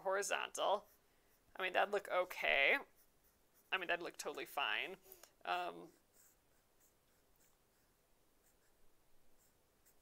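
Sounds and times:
pencil scratching on paper: 0.1 - 4.9, 5.8 - 10.0.

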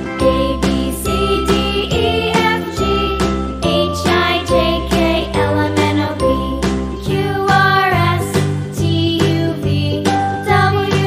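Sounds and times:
children's song music: 0.0 - 11.0.

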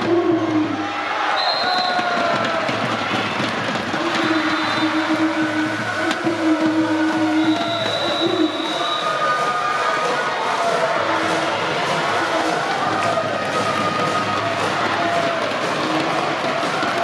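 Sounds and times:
crowd holding long tones: 0.0 - 17.0
crowd noise in gymnasium: 0.0 - 17.0.

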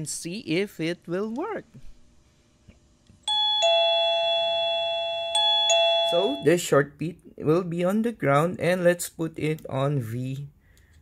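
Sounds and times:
doorbell ding-dong chime: 3.3 - 6.6.

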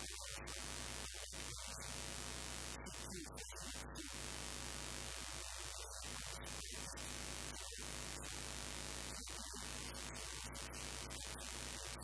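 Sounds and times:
static hiss: 0.0 - 12.0.

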